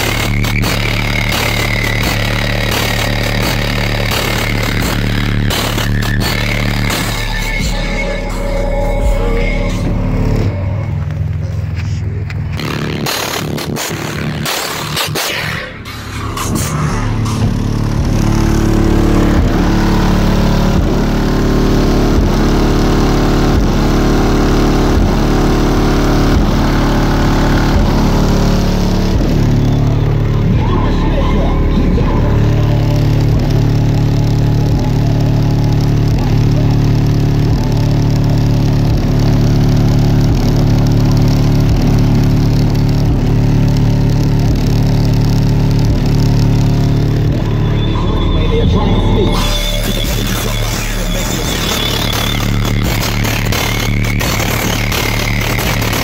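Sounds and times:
bass-heavy rap music: 0.0s - 56.0s
deep sliding bass notes: 0.0s - 56.0s.

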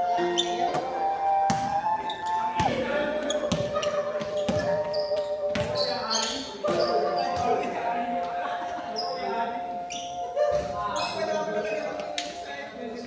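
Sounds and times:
sneaker squeaks: 0.0s - 12.5s
basketball bouncing on hardwood floor: 3.5s - 4.7s, 5.5s - 5.8s.

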